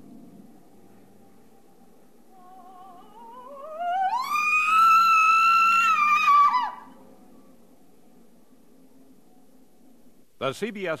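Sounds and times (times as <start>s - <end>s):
high wavering wail: 2.3s - 7.1s.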